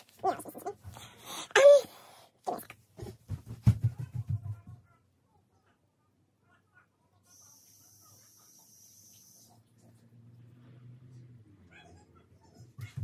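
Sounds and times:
faint low hum: 0:00.0 - 0:13.0
faint steady hiss: 0:07.0 - 0:10.3.

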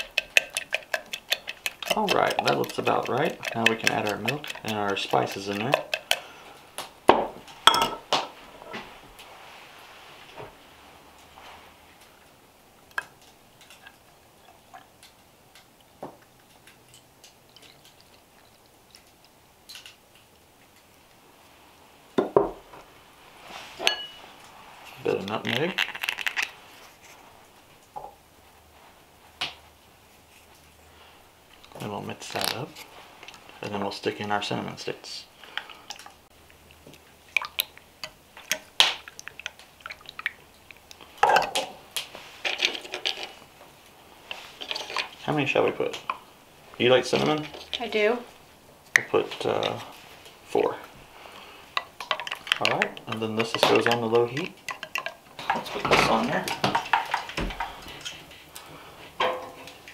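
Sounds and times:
milk pouring into a pot: 0:00.0 - 0:06.2
liquid sloshing: 0:00.0 - 0:06.4, 0:35.6 - 0:43.4, 0:51.8 - 0:58.4.

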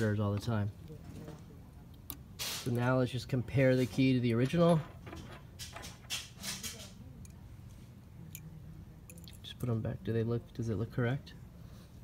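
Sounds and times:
faint steady hum: 0:00.0 - 0:12.0
keys rustling and scraping: 0:03.7 - 0:07.8.

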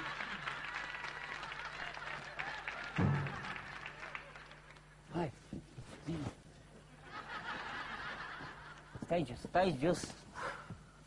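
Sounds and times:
studio audience laughter: 0:07.0 - 0:08.9.

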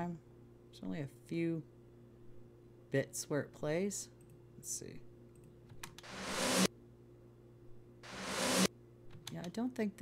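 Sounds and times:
reversed snare drum swells: 0:06.0 - 0:06.7, 0:08.0 - 0:08.7.

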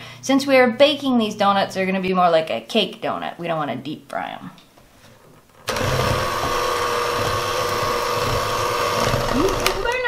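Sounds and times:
electric hand mixer whining: 0:05.6 - 0:10.0.

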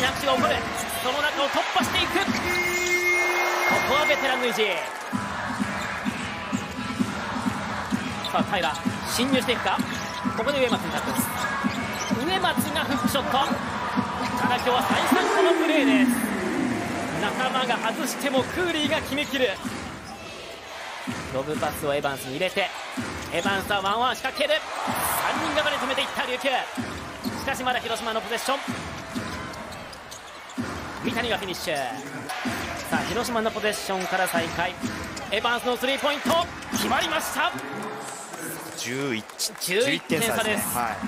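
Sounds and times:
arena crowd noise: 0:00.0 - 0:41.0
sneakers squeaking: 0:01.8 - 0:15.1, 0:18.8 - 0:21.3, 0:22.4 - 0:33.2, 0:33.8 - 0:37.0
basketball bouncing: 0:22.9 - 0:31.5, 0:34.4 - 0:35.3.

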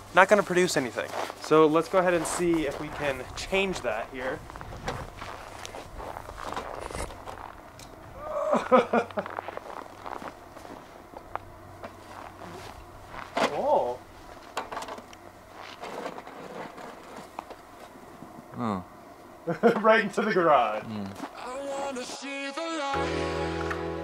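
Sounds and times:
roof rake scraping snow: 0:15.6 - 0:17.3
man's voice: 0:20.1 - 0:23.5.

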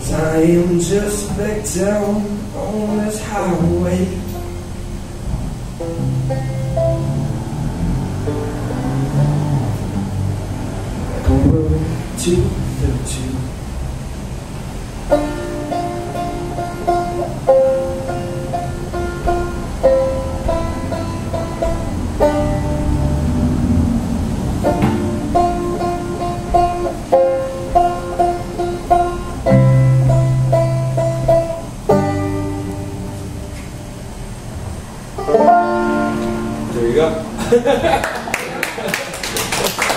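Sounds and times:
acoustic guitar playing: 0:00.0 - 0:38.3
banjo picking melody: 0:00.9 - 0:12.7, 0:14.9 - 0:34.2, 0:35.0 - 0:37.8.

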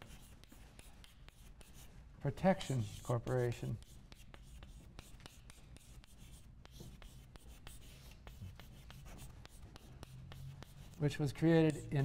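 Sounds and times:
chalk writing on blackboard: 0:00.0 - 0:12.0.

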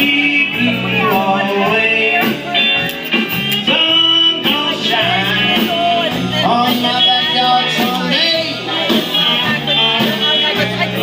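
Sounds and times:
lead vocal singing: 0:00.0 - 0:11.0
live band playing: 0:00.0 - 0:11.0.

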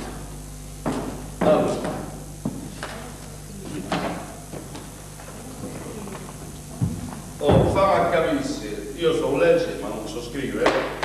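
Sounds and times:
knocks on wooden stage: 0:00.8 - 0:02.7, 0:06.8 - 0:07.9.

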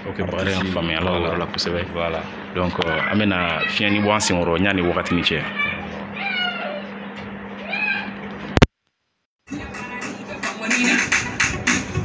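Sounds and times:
low electrical hum: 0:00.0 - 0:08.7.

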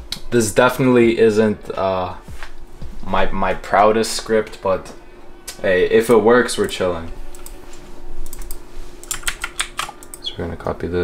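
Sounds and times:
faint steady hum: 0:00.0 - 0:11.0
computer keyboard keystrokes: 0:08.2 - 0:10.2.

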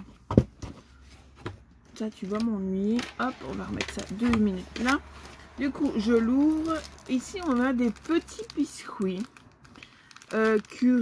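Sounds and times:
cardboard box thump: 0:00.3 - 0:00.8.

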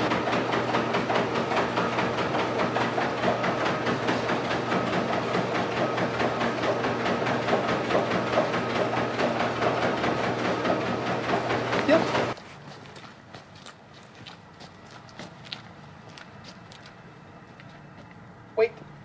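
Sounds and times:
treadmill motor hum and belt hiss: 0:00.0 - 0:12.4
dog paws trotting on belt: 0:11.7 - 0:18.2.

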